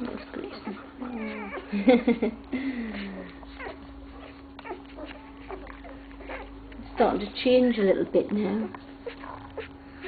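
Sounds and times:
puppies whimpering: 0:00.0 - 0:10.0.

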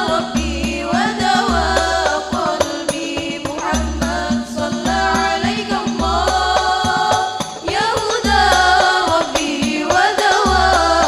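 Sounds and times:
girls singing through microphones: 0:00.0 - 0:11.0
hand-struck frame drums: 0:00.0 - 0:11.0.

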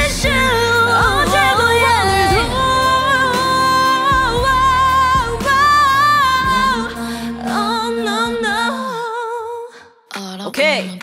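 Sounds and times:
woman singing with vibrato: 0:00.0 - 0:09.9.

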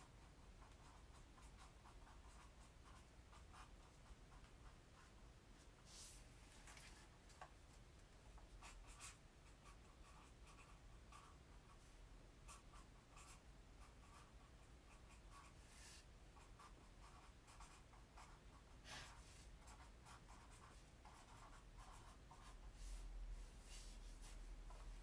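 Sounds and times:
scratching of drawing on paper: 0:00.5 - 0:05.1, 0:12.5 - 0:25.0.

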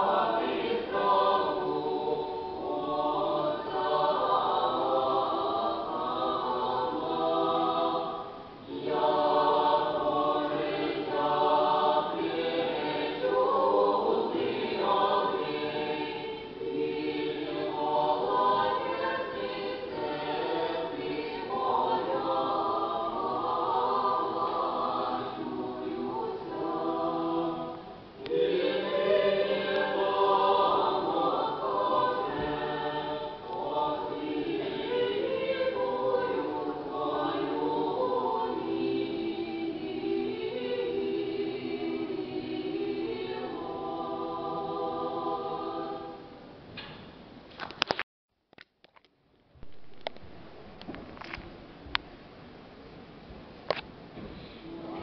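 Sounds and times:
choir singing a cappella: 0:00.0 - 0:46.6, 0:54.2 - 0:55.0.

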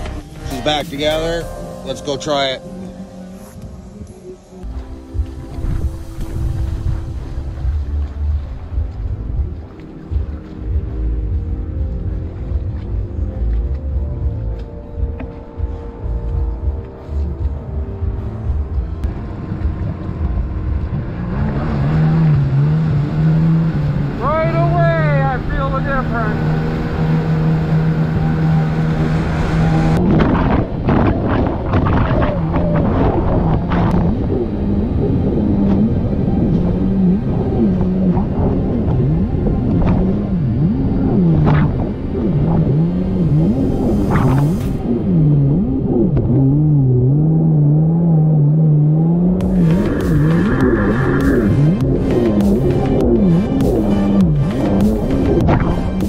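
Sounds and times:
jet ski engine revving: 0:19.4 - 0:56.0.

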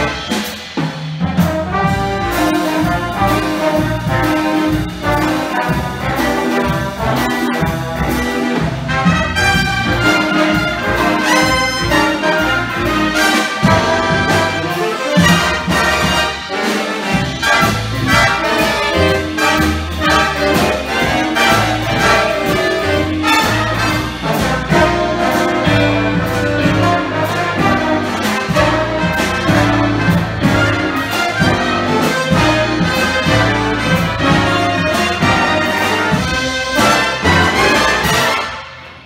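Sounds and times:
jazz big band playing: 0:00.0 - 0:39.0
saxophones and trumpets: 0:00.0 - 0:39.0.

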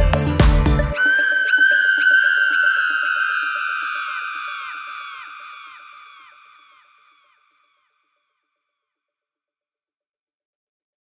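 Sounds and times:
echoing synth note: 0:00.8 - 0:06.5.

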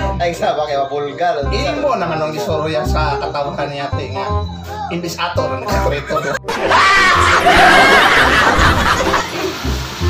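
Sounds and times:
high-pitched snickering laugh: 0:06.2 - 0:09.6.

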